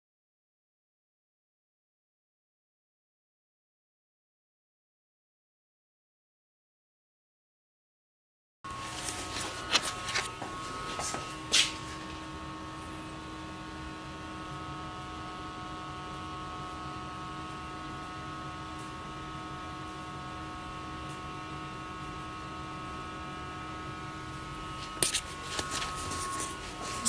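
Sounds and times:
electrical hum: 8.7s - 27.0s.

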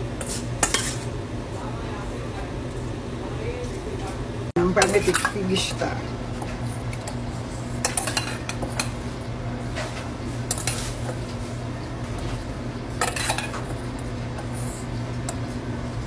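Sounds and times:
steady low hum: 0.0s - 16.0s
metal spoon scraping a pan: 0.2s - 1.1s, 12.9s - 13.8s.

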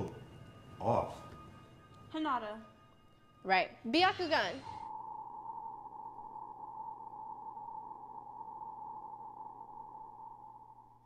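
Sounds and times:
sonar-like ringing tone: 4.6s - 11.0s.

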